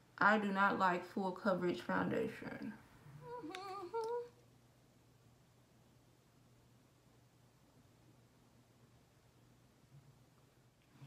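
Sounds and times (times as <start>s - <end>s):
woman humming: 3.2s - 4.4s.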